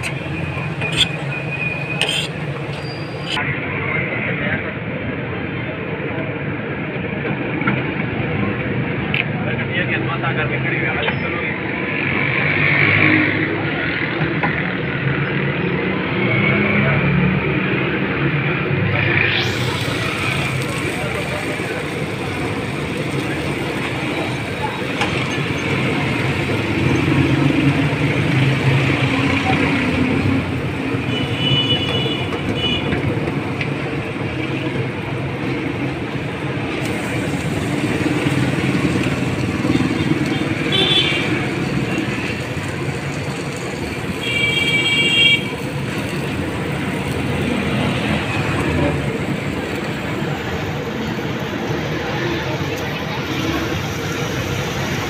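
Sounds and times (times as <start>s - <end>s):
background chatter: 0.0s - 44.3s, 45.3s - 55.0s
traffic hum: 0.0s - 55.0s
vehicle horn toots: 40.7s - 41.4s, 44.2s - 45.5s.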